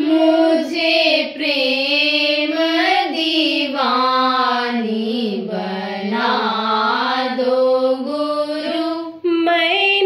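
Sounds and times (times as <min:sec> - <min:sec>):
person singing a chant: 0:00.0 - 0:10.0.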